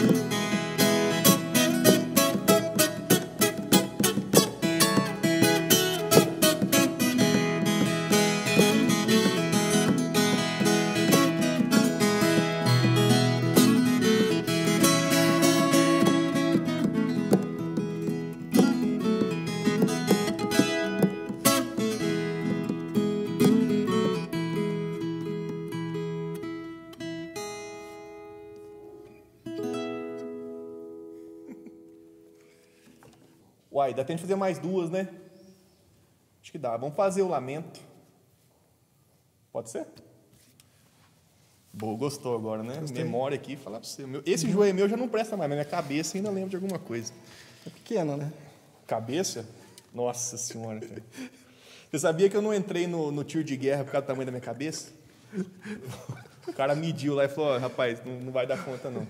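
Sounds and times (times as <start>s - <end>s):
strummed ten-string guitar: 0.0s - 31.9s.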